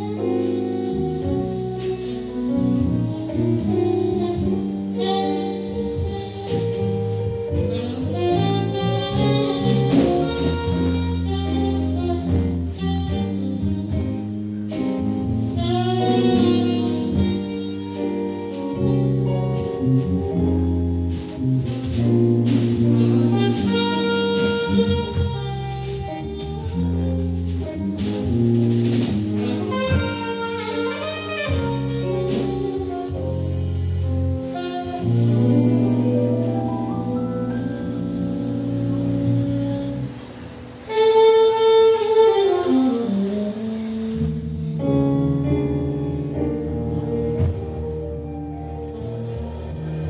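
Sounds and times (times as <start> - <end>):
drums: 0.0 - 49.0
electric bass: 0.0 - 50.0
jazz band chord: 0.0 - 50.0
keyboard: 0.0 - 50.0
saxophone: 0.0 - 50.0.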